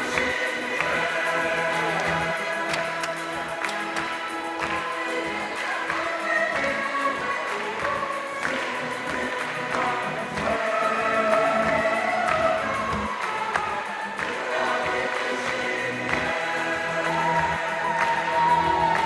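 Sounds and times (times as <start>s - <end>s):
accompanying music: 0.0s - 19.0s
choir singing: 0.0s - 19.0s.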